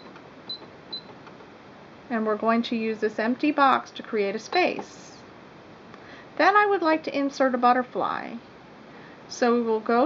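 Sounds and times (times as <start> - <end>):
sewing machine panel beeps: 0.0 - 1.2.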